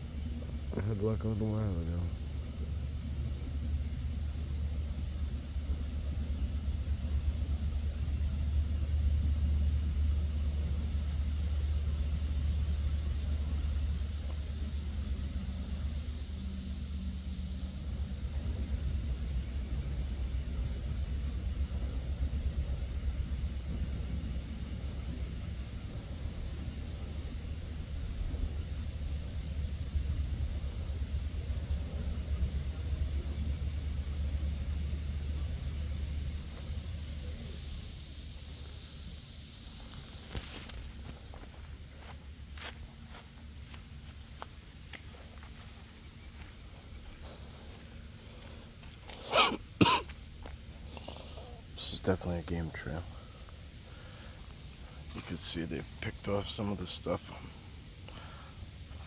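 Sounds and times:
faint outdoor hiss: 0.0s - 59.0s
low steady rumble: 0.0s - 59.0s.

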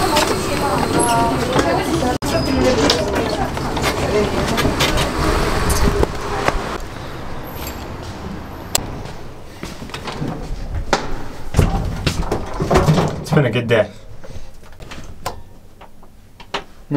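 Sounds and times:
bus interior rumbling: 0.0s - 12.6s.

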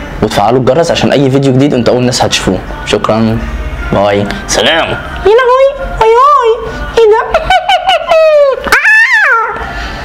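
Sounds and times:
person imitating dog whines: 8.2s - 9.6s.

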